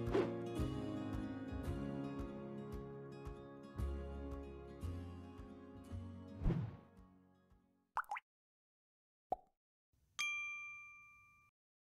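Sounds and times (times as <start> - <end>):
bright chime ding: 10.2 - 11.5.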